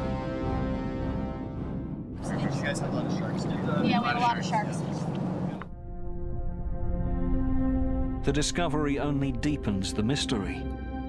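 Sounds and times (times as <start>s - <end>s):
boat noise: 2.2s - 5.7s
wind: 2.2s - 5.7s.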